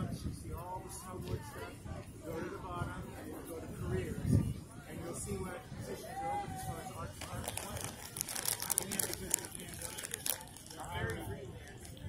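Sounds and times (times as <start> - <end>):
plastic snack bag crinkling: 7.2 - 11.3.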